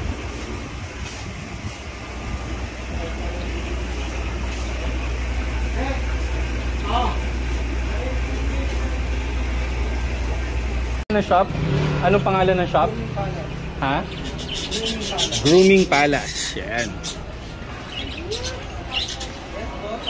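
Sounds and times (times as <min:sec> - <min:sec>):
distant voices: 0:00.0 - 0:20.0.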